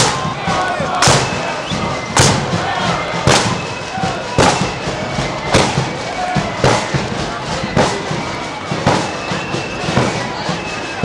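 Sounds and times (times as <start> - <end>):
bass drum and cymbals striking: 0.0 - 11.0.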